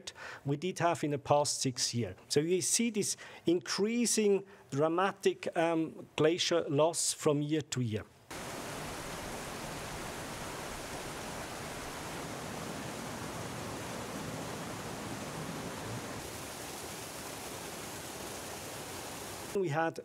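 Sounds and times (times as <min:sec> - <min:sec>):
meltwater rushing over rocks: 0:08.3 - 0:19.6.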